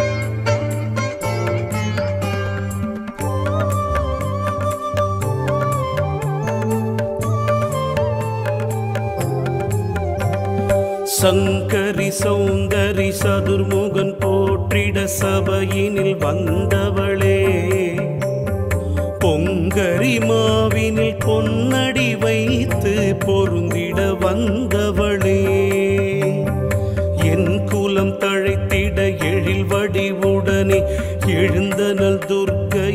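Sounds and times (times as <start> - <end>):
regular percussion: 0.0 - 32.9.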